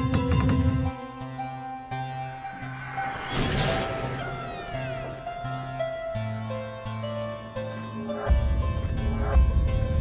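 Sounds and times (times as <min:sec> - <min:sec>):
noise burst with sliding pitches: 0:02.3 - 0:06.4.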